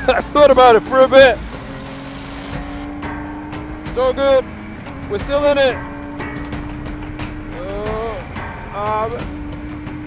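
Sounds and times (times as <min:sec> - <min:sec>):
race car engine revving: 0:00.0 - 0:10.0.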